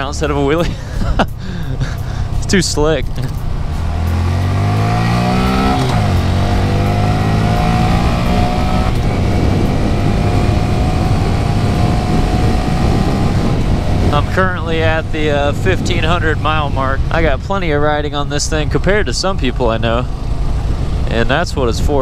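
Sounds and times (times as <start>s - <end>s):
motorcycle engine accelerating: 0.0s - 22.0s.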